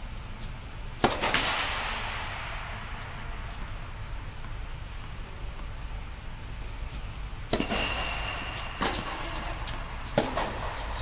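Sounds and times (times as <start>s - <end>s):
racket striking tennis ball: 1.0s - 4.6s, 6.9s - 11.0s.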